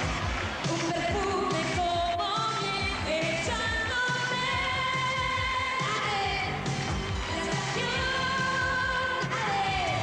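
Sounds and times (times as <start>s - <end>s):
pop backing music: 0.0s - 10.0s
woman singing pop song: 0.6s - 10.0s.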